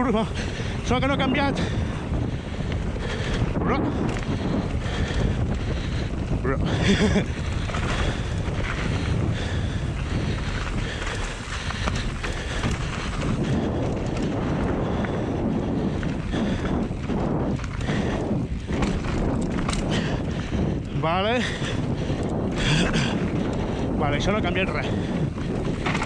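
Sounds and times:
bike tyres rolling over dirt: 0:00.0 - 0:26.0
wind on microphone: 0:00.0 - 0:26.0
bike knocks and rattles: 0:00.5 - 0:26.0.

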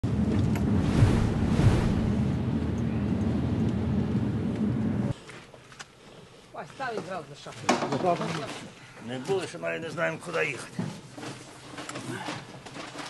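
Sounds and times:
vehicle engine rumble: 0:00.0 - 0:05.2.

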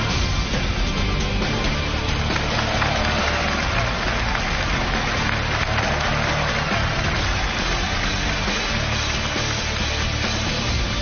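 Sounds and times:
audience applauding: 0:01.7 - 0:11.0.

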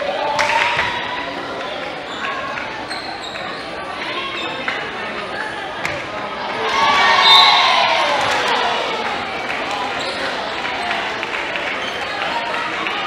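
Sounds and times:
voices of players and spectators: 0:00.0 - 0:13.0
sneaker squeaks: 0:02.0 - 0:06.0, 0:10.0 - 0:10.4.

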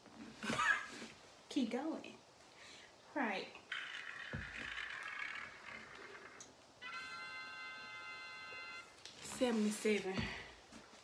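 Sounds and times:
soft hiss: 0:00.0 - 0:03.7, 0:08.5 - 0:11.0
electronic chord tone: 0:06.8 - 0:08.9.

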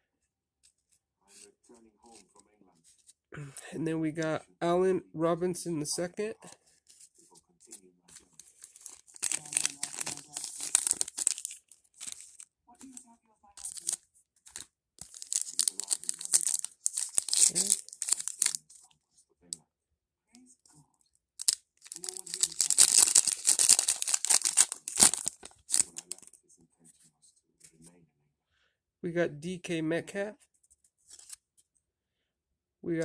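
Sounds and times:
wrapper tearing and crinkling: 0:08.4 - 0:12.4, 0:13.6 - 0:18.8, 0:21.4 - 0:26.3.

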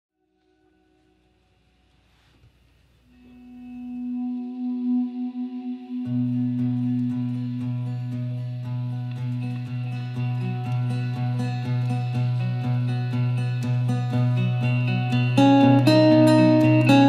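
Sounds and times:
held guitar note: 0:03.1 - 0:17.0
acoustic guitar picking: 0:03.2 - 0:17.0.

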